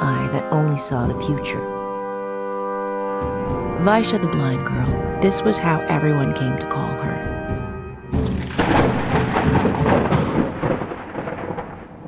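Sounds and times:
loud rough rumble: 8.3 - 12.0.

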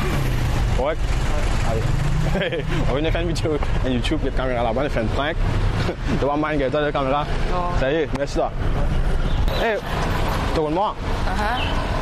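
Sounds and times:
road traffic low rumble: 0.0 - 12.0.

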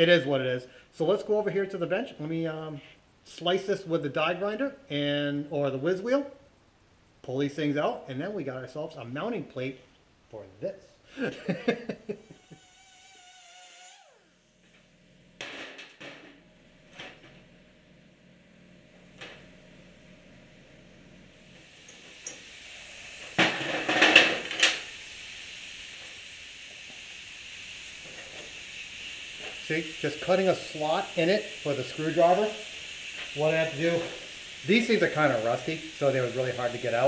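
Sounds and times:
pneumatic grinder grinding metal: 12.2 - 17.6, 18.8 - 37.0.

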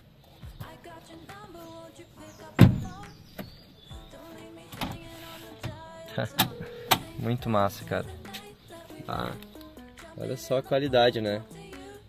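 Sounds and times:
background music: 0.0 - 12.0
folding seat clicks and knocks: 2.6 - 3.6
seat clacking into place: 4.7 - 5.8.

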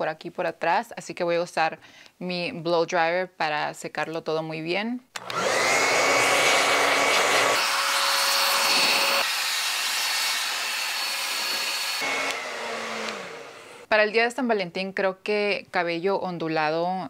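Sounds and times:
hair dryer blowing: 5.2 - 13.9.

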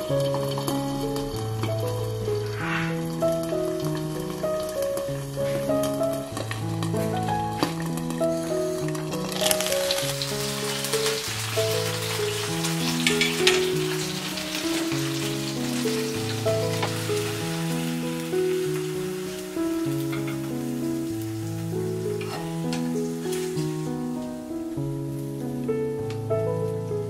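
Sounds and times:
eggs sizzling in a pan: 0.0 - 25.6
slow background music: 0.0 - 27.0.

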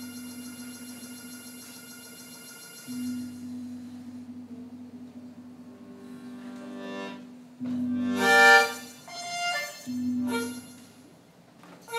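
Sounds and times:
faint high electronic whine: 0.0 - 11.9.

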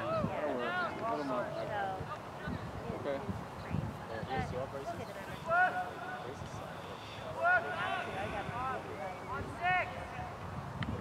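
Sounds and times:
players shouting: 5.2 - 10.2.

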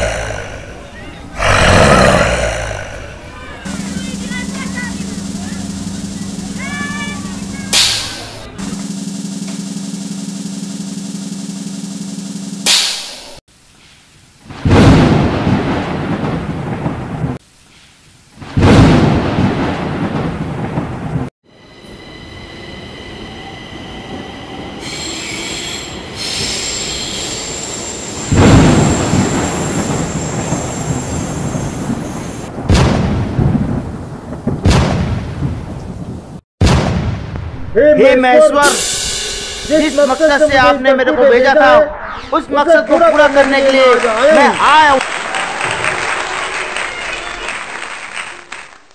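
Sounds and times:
thunder-like crashes: 0.0 - 8.9, 14.5 - 17.4, 18.4 - 21.3, 28.3 - 37.8
heavy rumble: 0.0 - 12.7
steady low hum: 0.0 - 13.3.

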